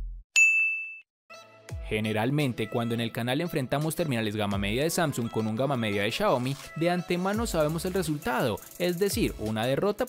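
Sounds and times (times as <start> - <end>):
electronic ding: 0.4 - 1.1
background music: 1.3 - 10.0.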